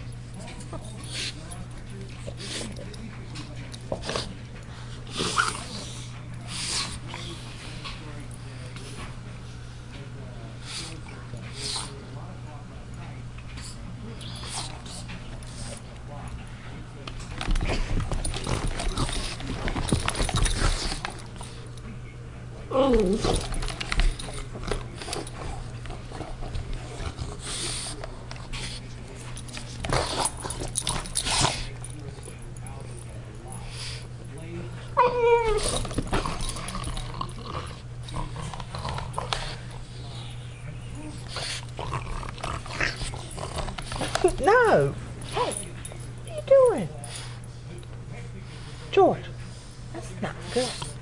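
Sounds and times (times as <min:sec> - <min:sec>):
dog scuffling: 0:17.1 - 0:21.7
dog whining: 0:35.0 - 0:35.9
dog grumbling: 0:35.0 - 0:39.7, 0:41.0 - 0:45.6.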